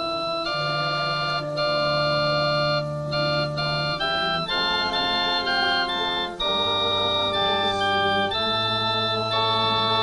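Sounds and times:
organ chords on keyboard: 0:00.0 - 0:10.0.

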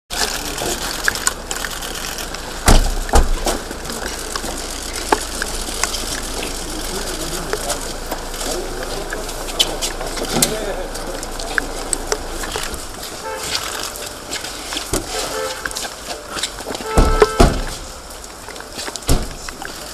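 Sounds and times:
loud knocks: 0:02.6 - 0:03.6, 0:16.9 - 0:17.9.

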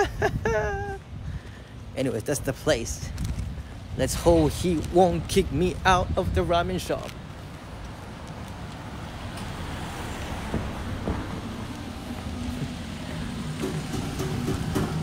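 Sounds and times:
low rumble of road traffic: 0:00.0 - 0:15.0
faint engine hum: 0:10.5 - 0:15.0.

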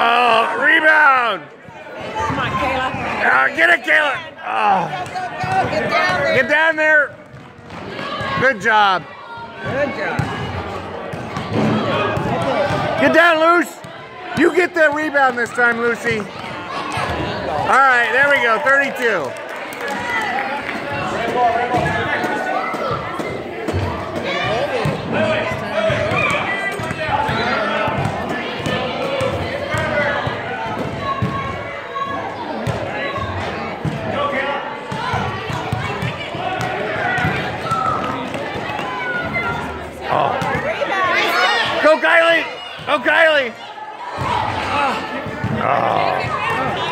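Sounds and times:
basketball bouncing on court floor: 0:07.1 - 0:08.4, 0:09.6 - 0:13.0, 0:25.9 - 0:30.0, 0:34.9 - 0:39.6
mixed voices: 0:09.7 - 0:46.9.

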